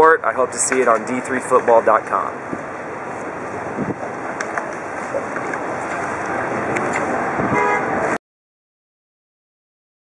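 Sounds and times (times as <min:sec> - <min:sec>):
outdoor noise: 0:00.0 - 0:08.2
vehicle horn honk: 0:07.5 - 0:08.0.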